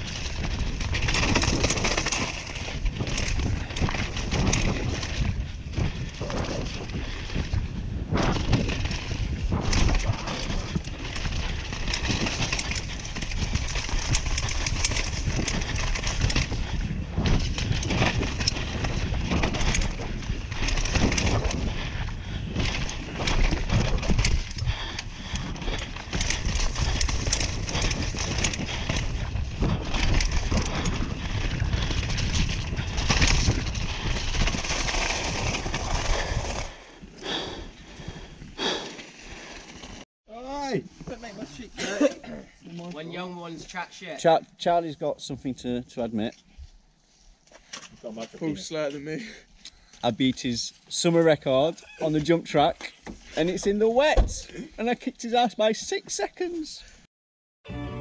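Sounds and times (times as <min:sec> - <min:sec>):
rush of tyres and air: 0:00.0 - 0:40.0
bike rattling and knocking: 0:00.0 - 0:42.0, 0:47.4 - 0:56.5.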